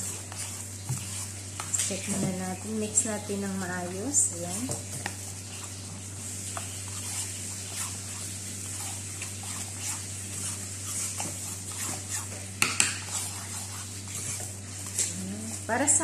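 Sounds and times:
spoon stirring wet mix in bowl: 0:00.0 - 0:16.0
steady low hum: 0:00.0 - 0:16.0.

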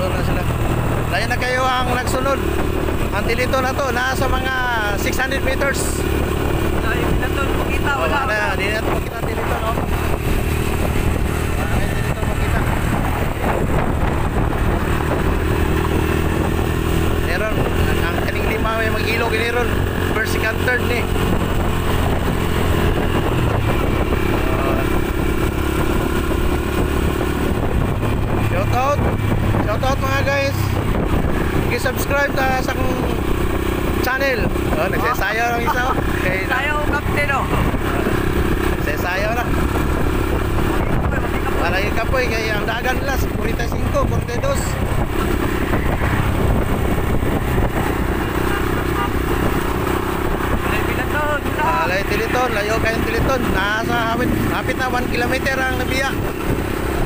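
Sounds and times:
voices talking: 0:00.0 - 0:25.5, 0:27.1 - 0:57.0
motorcycle engine running: 0:00.0 - 0:57.0.

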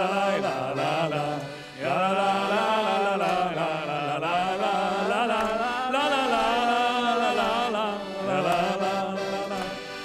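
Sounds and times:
group singing together: 0:00.0 - 0:10.0.

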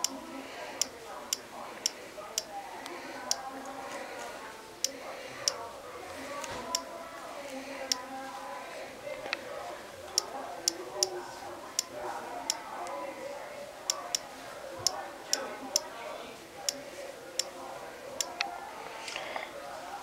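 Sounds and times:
faint murmur of voices: 0:00.0 - 0:20.0.

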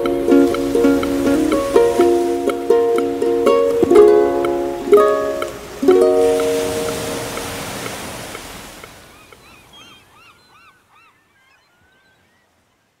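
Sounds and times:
ocean surf washing: 0:00.0 - 0:10.4
short bird calls: 0:09.1 - 0:12.7.

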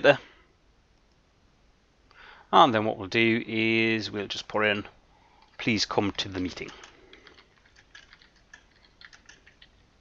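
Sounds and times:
man speaking: 0:00.0 - 0:00.2, 0:02.6 - 0:05.0, 0:05.6 - 0:06.9.

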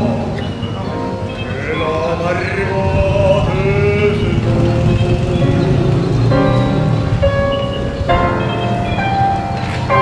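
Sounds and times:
male classical singer: 0:00.0 - 0:07.0
grand piano accompaniment: 0:00.0 - 0:10.0.

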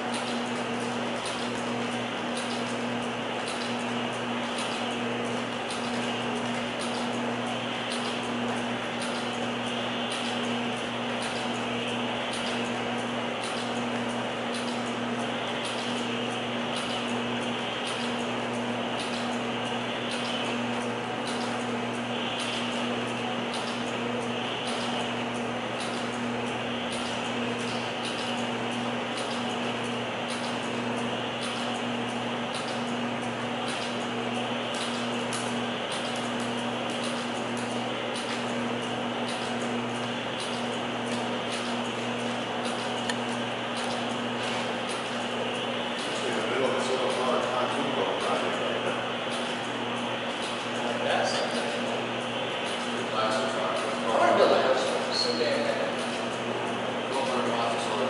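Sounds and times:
electrical hum: 0:00.0 - 0:58.0
ventilation fan noise: 0:00.0 - 0:58.0.

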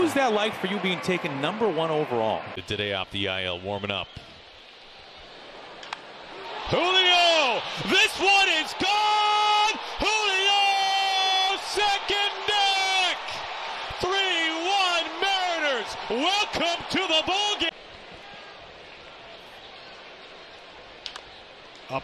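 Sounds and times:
broadcaster yelling excitedly: 0:06.6 - 0:17.7.

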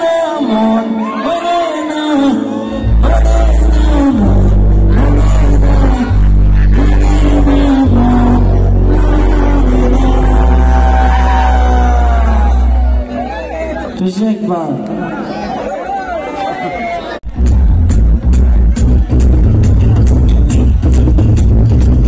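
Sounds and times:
bending melody line: 0:02.6 - 0:14.0
deep held bass notes: 0:02.7 - 0:14.0, 0:17.3 - 0:22.0.

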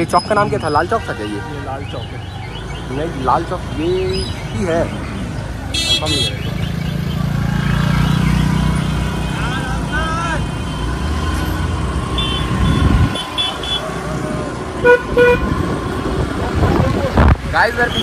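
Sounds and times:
traffic rumble: 0:00.0 - 0:18.0
horn toot: 0:14.8 - 0:15.6.

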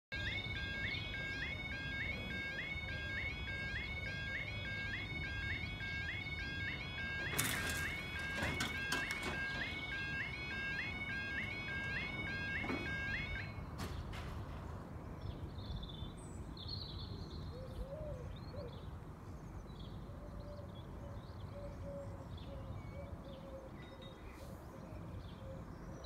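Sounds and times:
level crossing alarm tones: 0:00.1 - 0:13.8
alarm click: 0:07.0 - 0:13.5.

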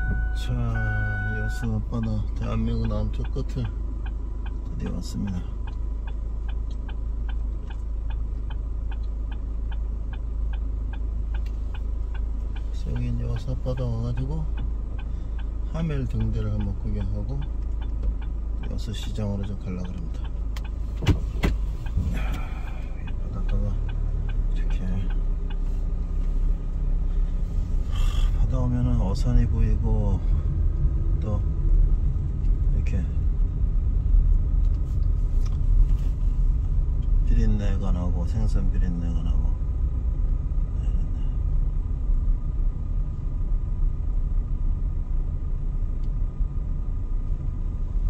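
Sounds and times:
car cabin low rumble: 0:00.0 - 0:48.0.

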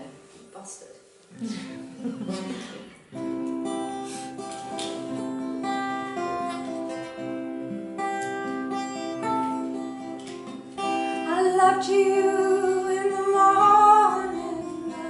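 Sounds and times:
acoustic guitar chords: 0:01.3 - 0:15.0.

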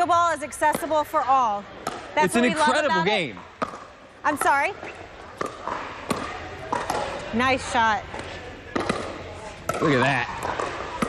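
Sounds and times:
faint background chatter: 0:00.0 - 0:11.0.

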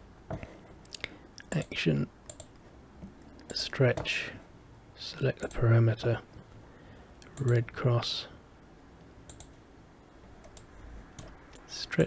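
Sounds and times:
faint room hiss: 0:00.0 - 0:12.0
computer mouse clicks: 0:00.9 - 0:04.1, 0:09.3 - 0:09.6, 0:10.4 - 0:11.7.

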